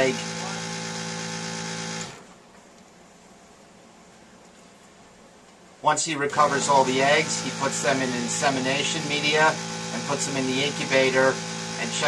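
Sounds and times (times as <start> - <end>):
suction pump motor hum: 0.0 - 2.3, 6.1 - 12.0.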